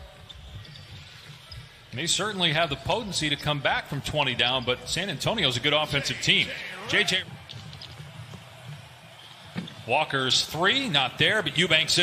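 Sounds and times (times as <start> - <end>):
quiet arena ambience: 0.0 - 12.0.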